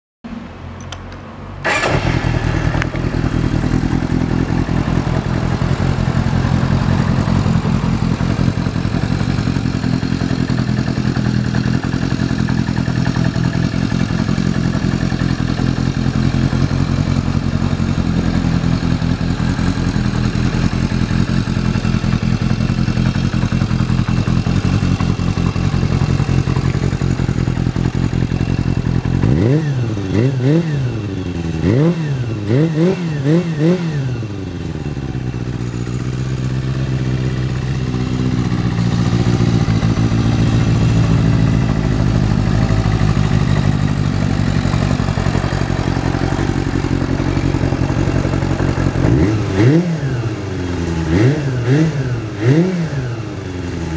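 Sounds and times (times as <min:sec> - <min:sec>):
motorcycle engine idling and revving: 0:00.3 - 0:53.9
motorcycle starter cranking: 0:00.8 - 0:03.7.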